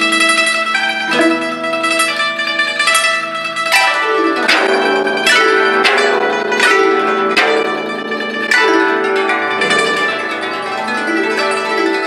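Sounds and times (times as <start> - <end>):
zither plucked sweeps: 0.0 - 12.0.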